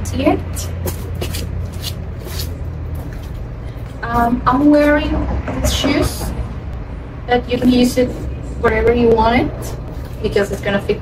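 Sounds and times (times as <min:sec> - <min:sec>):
footsteps on stone paving: 0:00.6 - 0:03.5.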